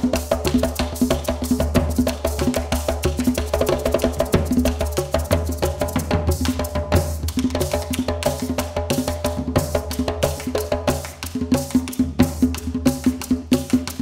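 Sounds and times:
percussion music with drums: 0:00.0 - 0:14.0.

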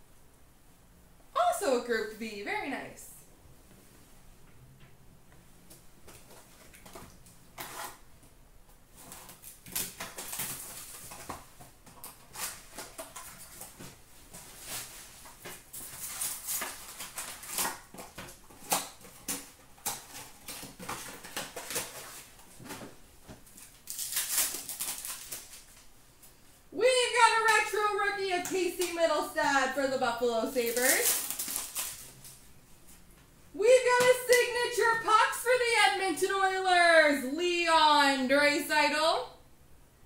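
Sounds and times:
paper and cardboard rustling: 0:08.9 - 0:25.9, 0:30.3 - 0:33.0
plastic wrap crinkling: 0:08.9 - 0:26.0, 0:27.0 - 0:32.5.

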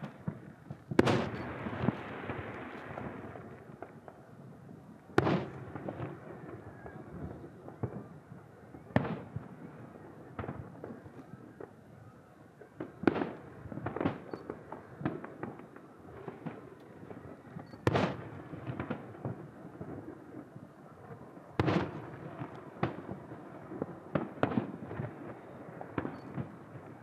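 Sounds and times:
firework pops and crackles: 0:00.0 - 0:12.0, 0:12.6 - 0:27.0.

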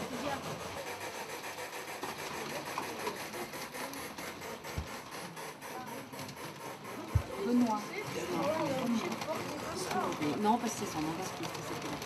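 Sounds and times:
wheels clicking on track: 0:00.0 - 0:12.0.

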